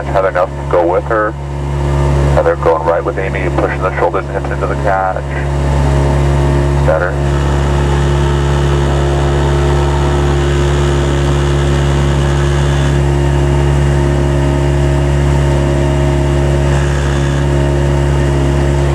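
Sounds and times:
outboard motor running: 0:00.0 - 0:18.9.

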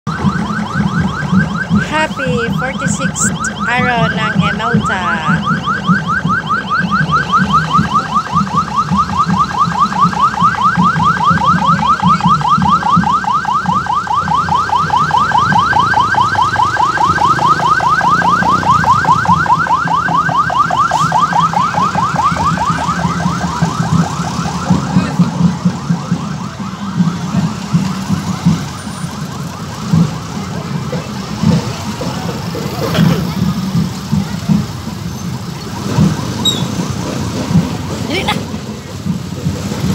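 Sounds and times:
electronic siren yelping: 0:00.1 - 0:29.8.

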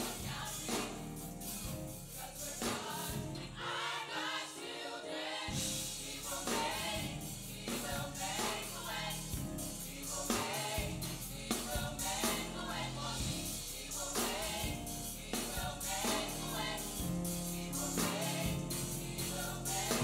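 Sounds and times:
choir singing in harmony: 0:00.0 - 0:20.0.

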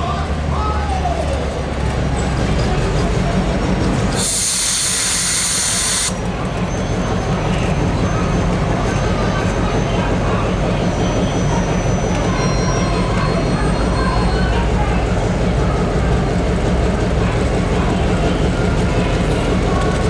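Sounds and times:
diesel locomotive engine rumble: 0:00.0 - 0:20.0
air hiss burst: 0:04.2 - 0:06.2.

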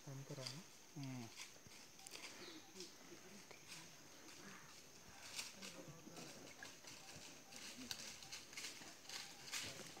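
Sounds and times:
footsteps crunching dry leaves: 0:01.1 - 0:10.0.

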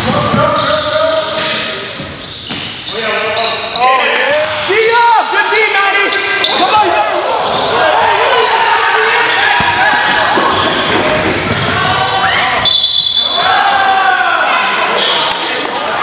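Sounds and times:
sneaker squeaks on court floor: 0:00.0 - 0:08.0, 0:09.6 - 0:13.4, 0:14.8 - 0:15.8
players shouting: 0:04.0 - 0:16.0
basketball bouncing: 0:09.2 - 0:12.4.

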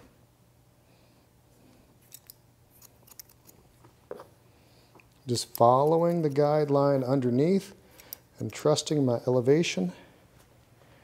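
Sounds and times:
scissors snipping hair: 0:02.0 - 0:03.6, 0:05.2 - 0:06.8
scissors click: 0:02.1 - 0:03.6, 0:05.4 - 0:06.5.

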